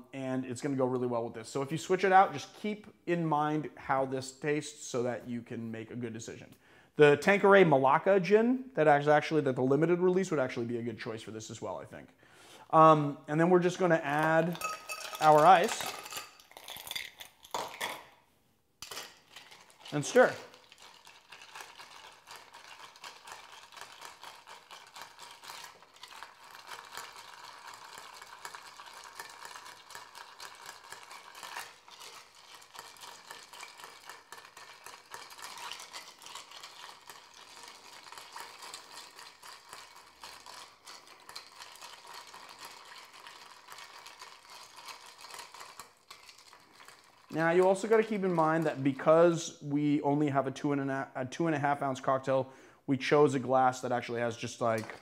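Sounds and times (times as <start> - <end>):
ice clinking in a glass: 14.2 - 18.1, 18.8 - 48.7.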